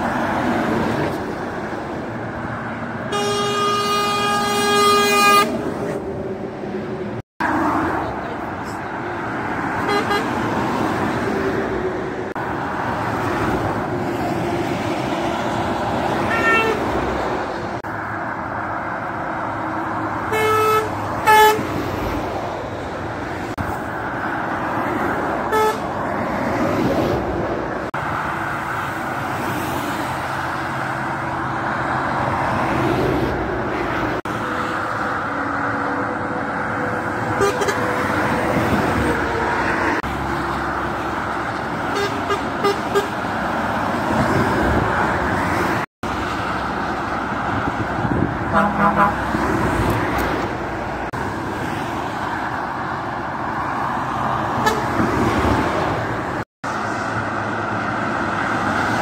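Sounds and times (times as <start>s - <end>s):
motorway traffic passing: 0.0s - 59.0s
truck air horn toots: 3.1s - 5.6s, 9.8s - 10.4s, 16.2s - 17.0s, 20.3s - 21.7s, 25.5s - 25.9s, 37.2s - 38.4s, 41.9s - 43.2s, 48.5s - 49.5s, 54.6s - 55.0s.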